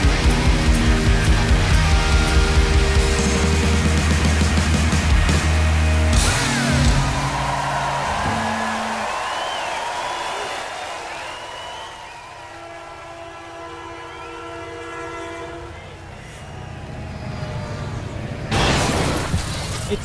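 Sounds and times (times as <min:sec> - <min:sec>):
train horn chord: 0:12.4 - 0:17.7.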